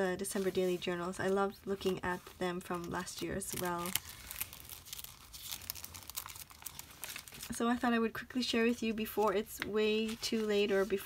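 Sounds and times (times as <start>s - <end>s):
paper pages turning and rustling: 0.3s - 7.6s, 9.0s - 11.0s.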